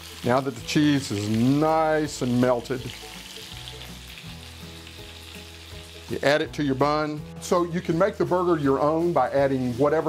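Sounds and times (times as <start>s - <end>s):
burgers sizzling in a skillet: 0.0s - 10.0s.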